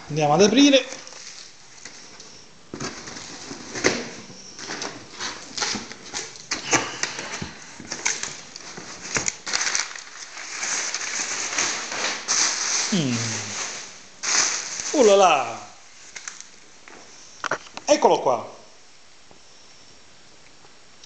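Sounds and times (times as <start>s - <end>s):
packing paper crinkling: 0.0s - 17.8s.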